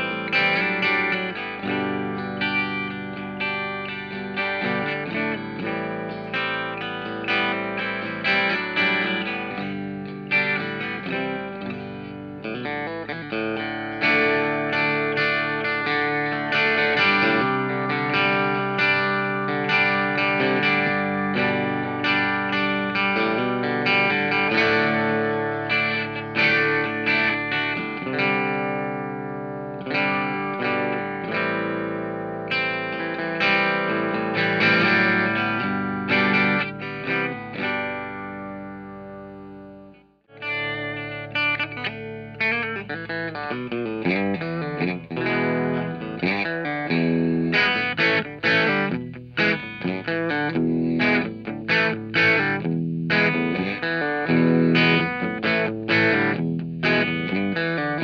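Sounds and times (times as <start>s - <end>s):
overdriven electric guitar picking: 0.0s - 58.0s.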